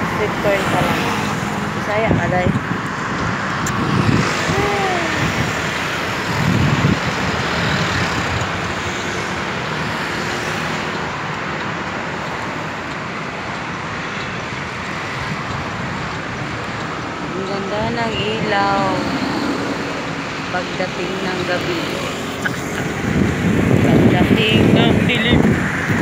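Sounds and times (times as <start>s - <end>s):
loud vehicle passing: 0.0s - 26.0s
road traffic noise: 0.0s - 26.0s.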